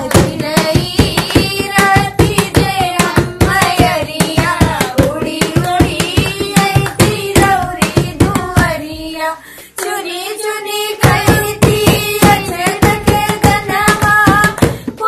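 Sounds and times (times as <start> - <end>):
hand claps: 0.0 - 8.8, 11.0 - 15.0
women singing folk song: 0.0 - 15.0.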